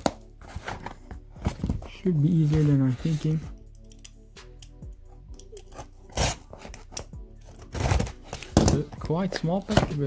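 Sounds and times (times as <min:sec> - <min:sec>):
faint background music: 0:00.0 - 0:10.0
cardboard tearing rip: 0:06.1 - 0:06.6, 0:07.6 - 0:08.8.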